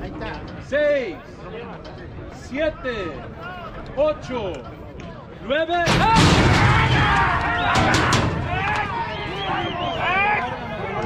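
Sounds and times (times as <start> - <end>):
metal gate doors banging open: 5.8 - 9.2
horse hooves clattering and thudding: 5.9 - 9.1
men shouting and whooping: 6.0 - 11.0.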